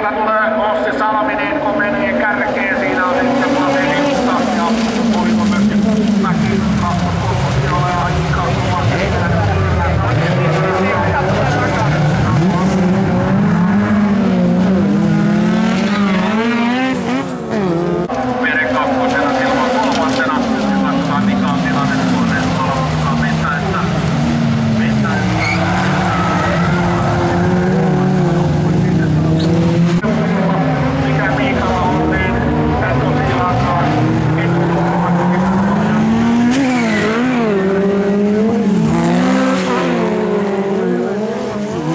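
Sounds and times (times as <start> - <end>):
race car engines revving: 0.0 - 41.9.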